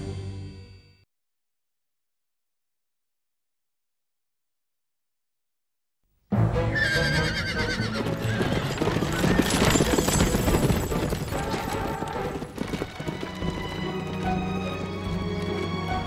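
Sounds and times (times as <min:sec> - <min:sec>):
background music: 0:00.0 - 0:01.0, 0:06.3 - 0:16.0
horse whinnying: 0:06.7 - 0:13.4
clattering hoofbeats: 0:07.4 - 0:16.0.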